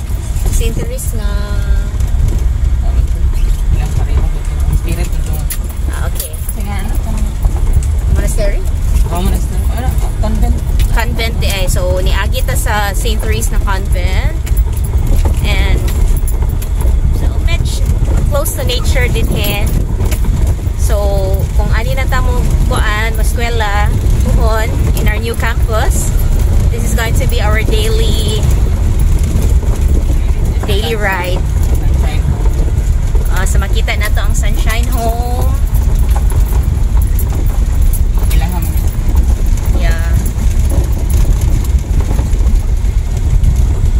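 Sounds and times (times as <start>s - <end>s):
vehicle rumbling on gravel road: 0.0s - 43.9s
cabin rattling and clattering: 2.1s - 43.9s.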